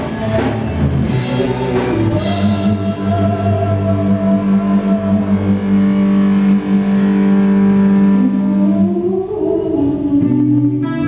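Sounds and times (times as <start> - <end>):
live rock band playing: 0.0 - 9.0
distorted electric guitar chord: 0.0 - 11.0.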